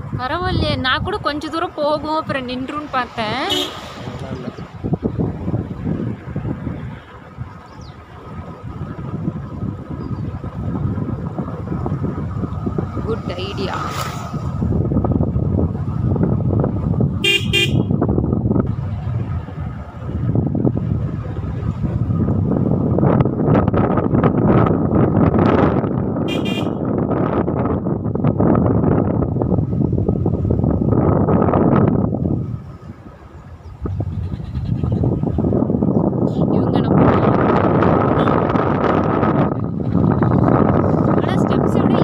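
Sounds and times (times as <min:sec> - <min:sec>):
motorcycle road noise: 0:00.0 - 0:42.0
wind rushing over microphone: 0:00.0 - 0:42.0
vehicle horn beeping: 0:03.5 - 0:03.8, 0:17.2 - 0:18.0, 0:26.3 - 0:26.9.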